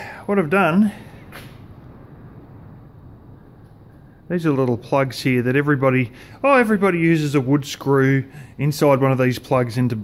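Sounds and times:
low rumble: 0:00.0 - 0:08.6
soft hiss: 0:00.0 - 0:09.9.

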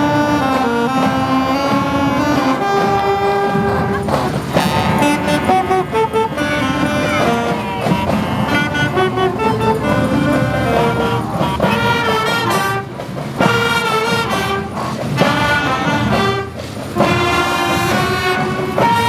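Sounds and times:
marching band playing: 0:00.0 - 0:19.0
saxophones playing held notes: 0:00.0 - 0:19.0.

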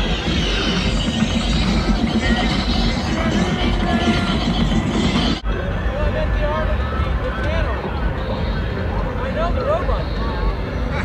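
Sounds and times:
crowd voices: 0:00.0 - 0:11.0
festival music: 0:00.0 - 0:11.0
vehicle engine noise: 0:00.0 - 0:11.0.

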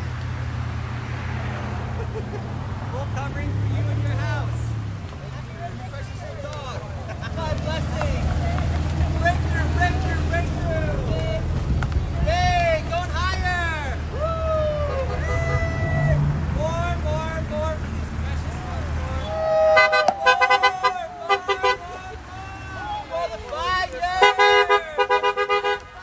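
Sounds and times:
car engines humming: 0:00.0 - 0:26.0
people calling out: 0:12.1 - 0:26.0.

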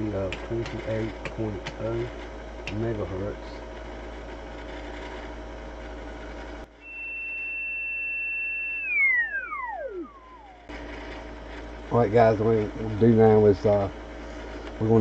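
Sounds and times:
high radio whistle sliding down: 0:06.8 - 0:10.7.

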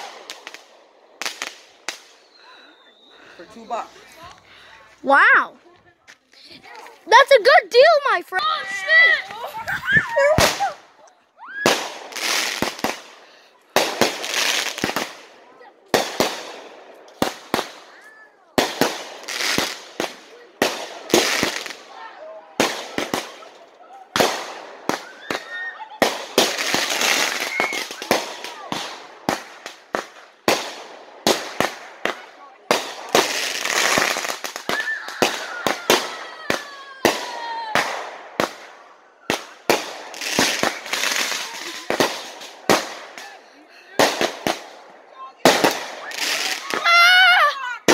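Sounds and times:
fireworks bangs and crackles: 0:00.0 - 0:04.6, 0:06.7 - 0:47.9.

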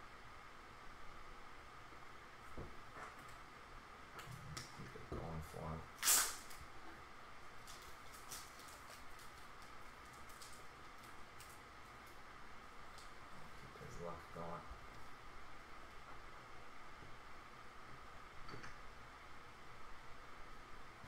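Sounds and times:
faint steady hum: 0:00.0 - 0:21.0
short loud hiss: 0:06.0 - 0:06.5.

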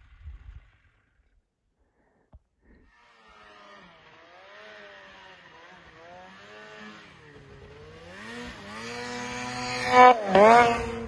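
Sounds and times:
snowmobile engine revving: 0:02.7 - 0:11.0.

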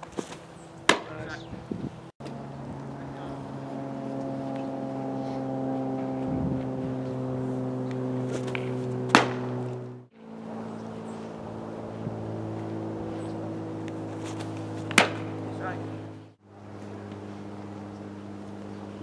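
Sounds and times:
baseball popping into mitt: 0:00.0 - 0:01.1, 0:07.9 - 0:09.7, 0:13.9 - 0:15.4
hum of held low tones: 0:00.0 - 0:19.0.

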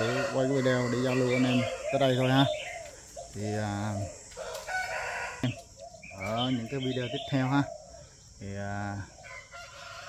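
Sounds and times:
rooster crowing: 0:00.0 - 0:02.2, 0:04.3 - 0:05.7, 0:09.2 - 0:10.0.

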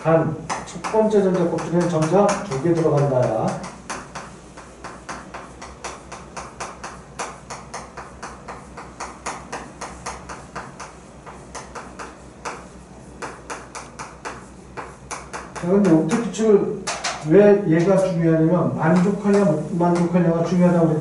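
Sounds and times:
chalk tapping and scraping on board: 0:00.0 - 0:21.0.

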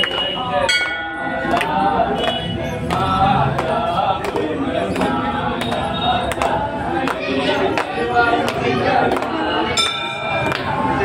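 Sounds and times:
crowd voices: 0:00.0 - 0:11.0
metal temple bell struck: 0:00.7 - 0:01.4, 0:09.8 - 0:10.5.

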